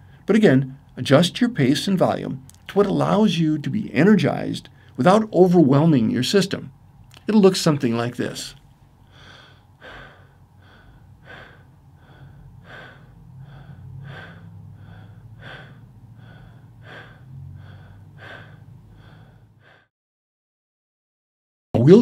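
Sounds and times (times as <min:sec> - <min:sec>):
man breathing rapidly through mouth: 0:08.8 - 0:19.9.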